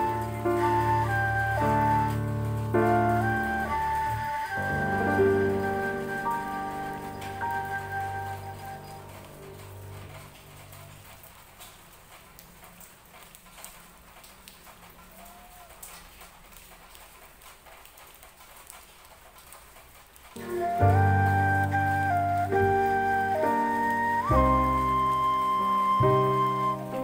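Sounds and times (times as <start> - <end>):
gentle flute music: 0.0 - 10.9, 20.4 - 27.0
light rain patter: 0.0 - 27.0
water drips: 0.0 - 27.0.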